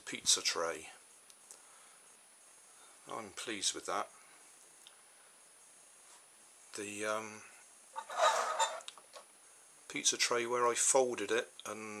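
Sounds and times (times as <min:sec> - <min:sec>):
plastic toy rustling scrape: 0:08.0 - 0:08.9.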